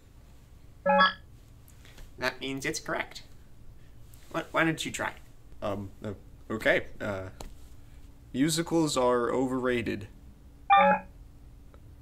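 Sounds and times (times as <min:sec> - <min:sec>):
short electronic beep: 0:00.9 - 0:01.2, 0:10.7 - 0:11.1.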